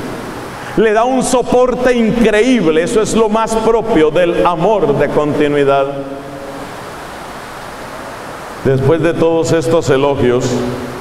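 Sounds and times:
steady background hiss: 0:00.0 - 0:11.0
man's amplified voice: 0:00.7 - 0:06.6, 0:08.6 - 0:11.0.

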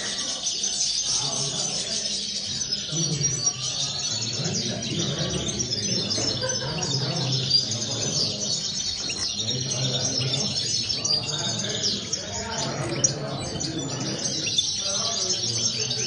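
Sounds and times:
goldfinches singing: 0:00.0 - 0:16.0.

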